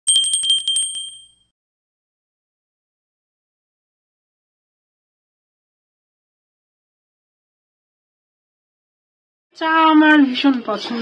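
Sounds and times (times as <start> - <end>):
small bell ringing: 0.0 - 1.5.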